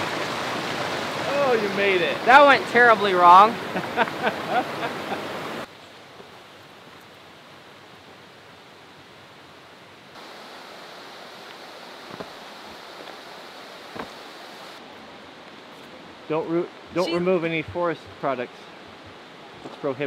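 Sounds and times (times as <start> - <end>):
hiss of distant water: 0.0 - 20.0
rushing creek water: 0.0 - 20.0.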